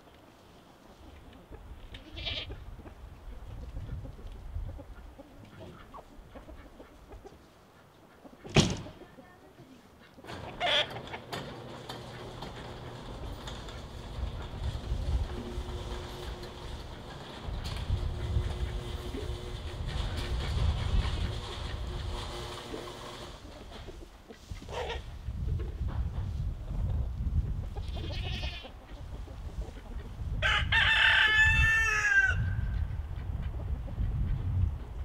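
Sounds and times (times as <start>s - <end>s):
chickens calling: 0.7s - 25.8s, 26.7s - 35.0s
low steady hum: 10.3s - 23.5s.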